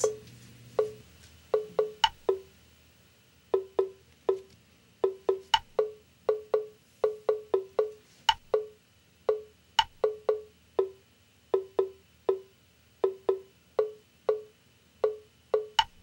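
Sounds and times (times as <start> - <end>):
wood-block percussion music: 0.8 - 2.5, 3.5 - 16.0.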